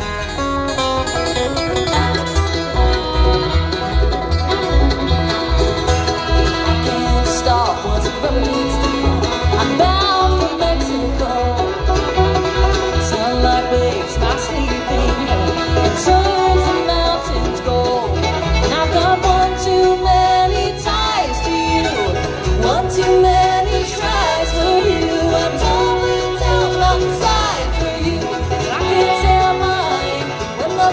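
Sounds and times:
bluegrass band playing: 0.0 - 30.9.

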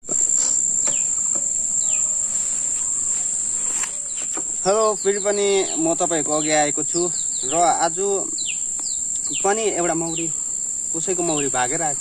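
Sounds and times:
high-pitched insect trill: 0.0 - 12.0
falling bird chirps: 0.2 - 11.5.

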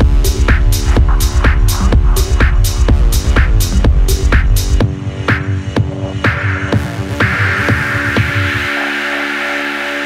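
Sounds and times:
deep bass: 0.0 - 8.8
techno percussion hits: 0.0 - 9.2.

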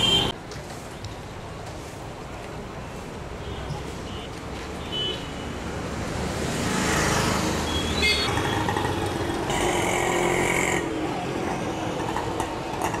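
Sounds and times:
traffic passing: 0.0 - 13.0.

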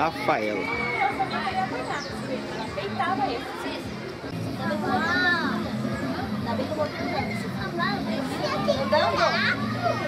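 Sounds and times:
children's voices and chatter: 0.0 - 10.0.

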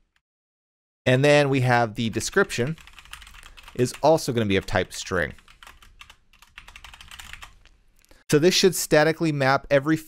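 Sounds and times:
computer keyboard typing: 2.1 - 7.7.

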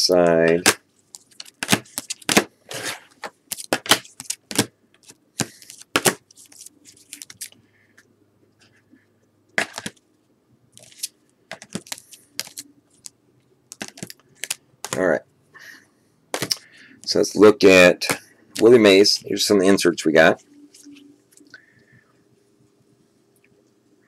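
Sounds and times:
cardboard cards riffled: 0.5 - 7.5, 10.8 - 12.6, 13.7 - 15.0.

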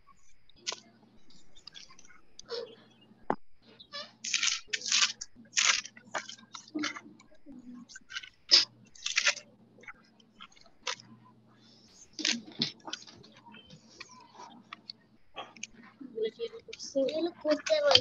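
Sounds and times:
faint electrical hum: 0.0 - 18.0
scratching and rustling noise: 3.6 - 11.2.

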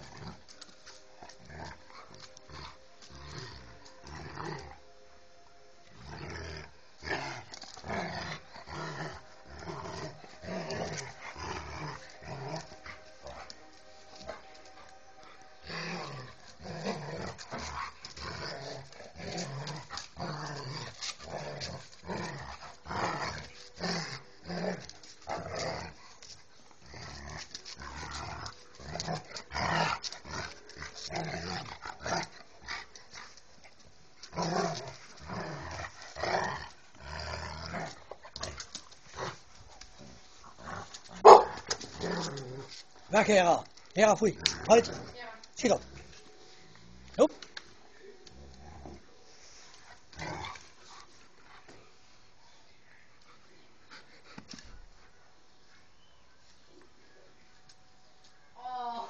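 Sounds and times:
dogs growling in play: 0.0 - 5.0, 5.8 - 55.3.

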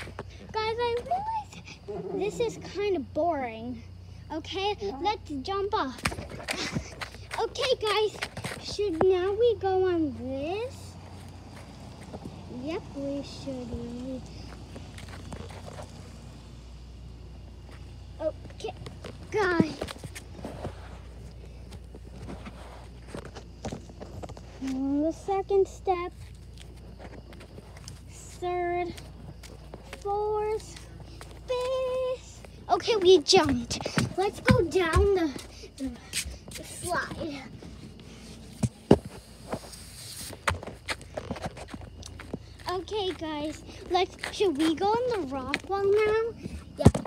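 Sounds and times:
flip-flop footsteps on wood: 17.6 - 24.8, 26.1 - 47.0.

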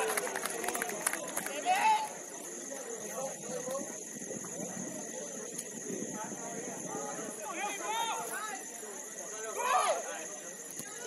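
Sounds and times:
steady high-pitched hiss: 0.0 - 11.0.

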